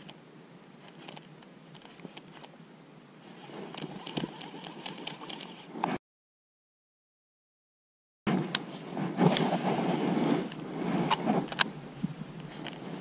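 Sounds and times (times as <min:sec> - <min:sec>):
faint lake ambience: 0:00.0 - 0:06.0, 0:08.3 - 0:13.0
handling clicks and rustles: 0:00.8 - 0:02.6, 0:03.3 - 0:06.0, 0:10.4 - 0:13.0.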